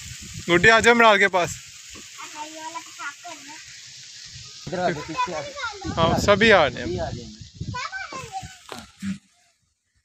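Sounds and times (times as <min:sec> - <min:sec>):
young child talking and calling: 0:02.0 - 0:03.8, 0:04.7 - 0:06.3, 0:07.6 - 0:09.5
other voices: 0:04.6 - 0:09.3.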